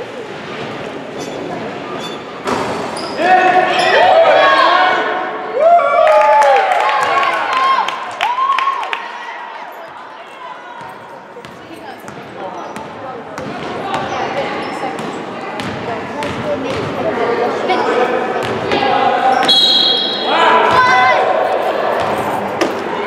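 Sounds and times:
spectators' voices and shouts: 2.8s - 23.0s.

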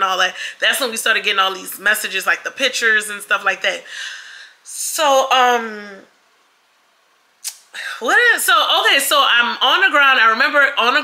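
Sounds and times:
faint breath: 3.8s - 4.6s
sharp click-like puff: 7.4s - 7.7s.

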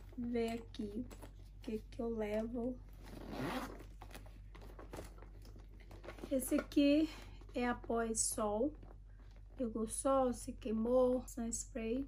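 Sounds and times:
rustling in a pouch: 0.0s - 9.8s.

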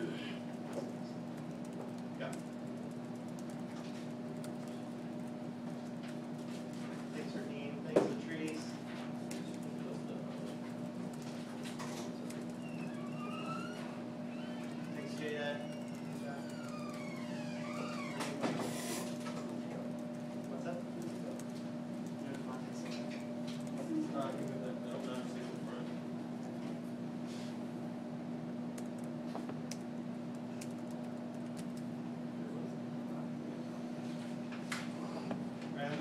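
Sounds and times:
low room hum: 0.0s - 36.0s.

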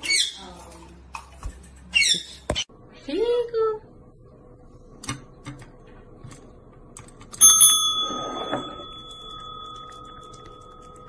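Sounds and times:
desk bell ringing: 7.4s - 11.0s.

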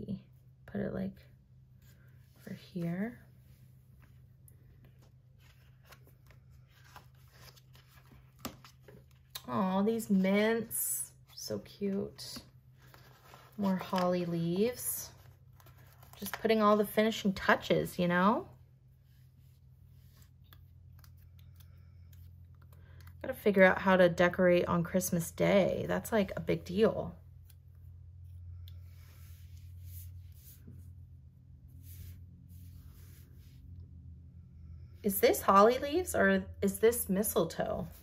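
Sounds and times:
steady low hum: 0.0s - 38.0s
paper pages rustling: 3.9s - 9.4s, 12.3s - 17.0s.

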